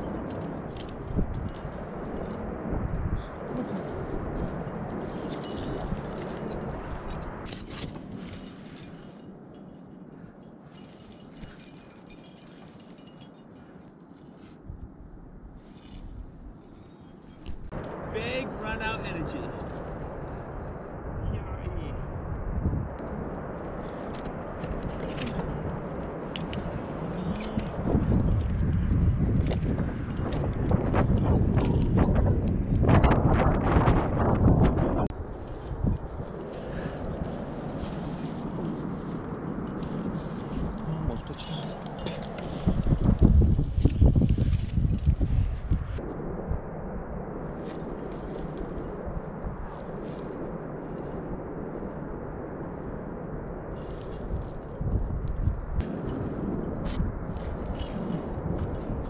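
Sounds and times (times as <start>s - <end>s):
gusty wind on microphone: 0.0s - 59.0s.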